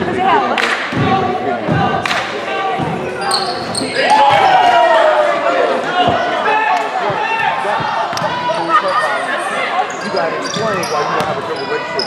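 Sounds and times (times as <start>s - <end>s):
voices echoing: 0.0s - 12.0s
shoes squeaking: 3.0s - 4.3s, 5.9s - 12.0s.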